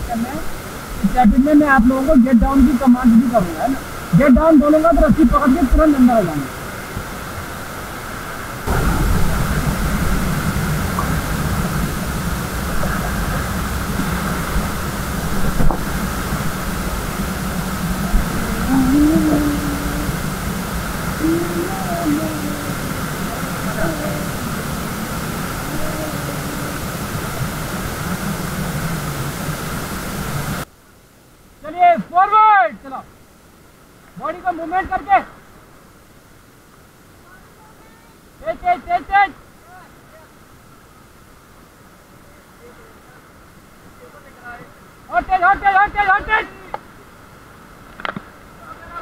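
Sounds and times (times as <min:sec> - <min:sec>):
whitewater rushing: 0:00.0 - 0:30.7
faint voices calling out: 0:17.9 - 0:27.4.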